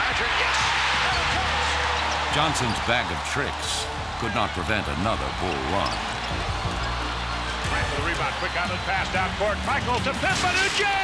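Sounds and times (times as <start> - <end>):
arena crowd noise: 0.0 - 11.0
announcer speaking: 2.4 - 5.9.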